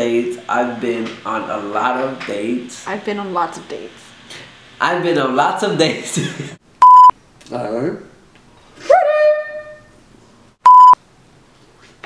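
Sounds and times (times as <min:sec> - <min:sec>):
censor bleep: 0:06.8 - 0:07.1, 0:10.6 - 0:11.0.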